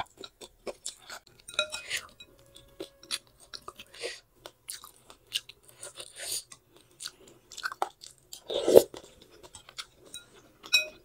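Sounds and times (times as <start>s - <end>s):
cutlery clinking on glass bowl: 1.1s - 3.8s, 9.6s - 11.0s.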